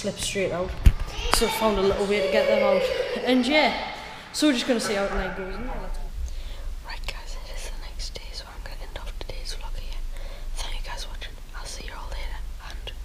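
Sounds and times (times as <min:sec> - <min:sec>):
steady low hum: 0:00.0 - 0:13.0
person whispering: 0:06.8 - 0:13.0.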